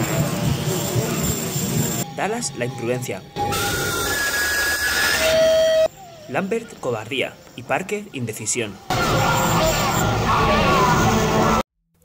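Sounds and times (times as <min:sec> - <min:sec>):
steady electronic tones: 0:00.0 - 0:11.6.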